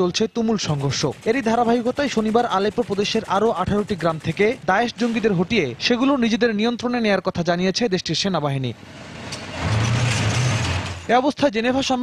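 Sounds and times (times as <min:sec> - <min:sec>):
person speaking: 0:00.0 - 0:08.8.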